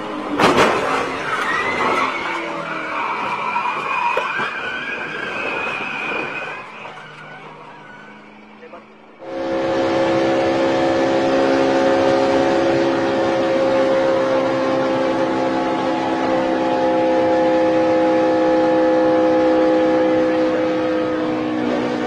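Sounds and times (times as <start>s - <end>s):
race car engine at full throttle: 0.0s - 22.0s.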